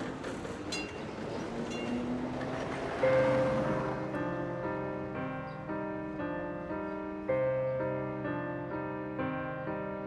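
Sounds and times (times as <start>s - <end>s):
train rumble: 0.0s - 5.1s.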